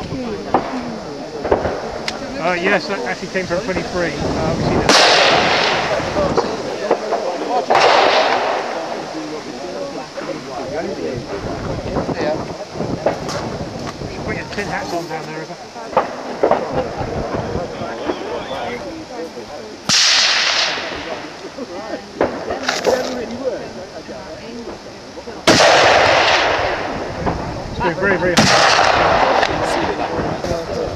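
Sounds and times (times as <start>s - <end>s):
rifle shot: 4.9s - 9.0s, 19.9s - 21.3s, 25.5s - 27.0s, 28.4s - 30.3s.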